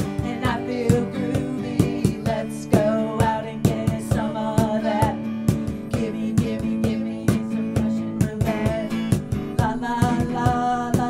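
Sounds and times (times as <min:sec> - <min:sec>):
acoustic guitar strumming: 0:00.0 - 0:11.0
drum kit beat: 0:00.0 - 0:11.0.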